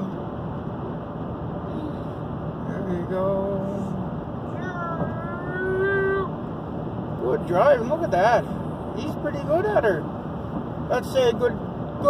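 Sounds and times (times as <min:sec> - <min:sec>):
road and tyre noise in car: 0:00.0 - 0:12.0.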